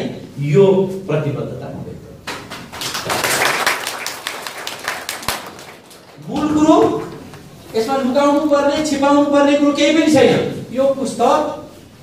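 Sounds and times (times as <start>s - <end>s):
audience applauding: 2.5s - 7.6s.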